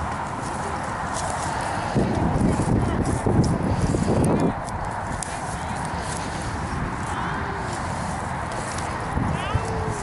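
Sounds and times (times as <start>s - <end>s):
outdoor noise: 0.0s - 10.0s.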